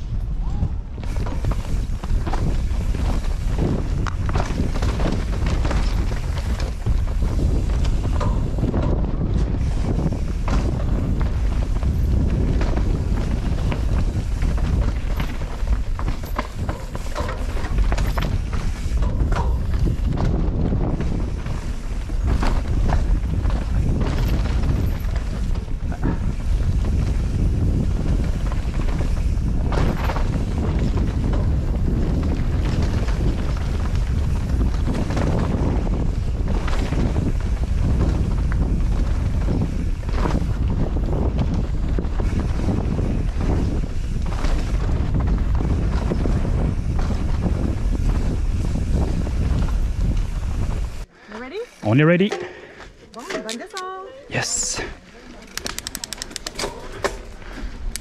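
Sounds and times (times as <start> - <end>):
bike rattling and knocking: 0.0 - 51.1, 55.3 - 58.0
wind rushing over microphone: 0.0 - 51.9
tyres on dirt and rock: 1.0 - 54.0, 54.8 - 58.0.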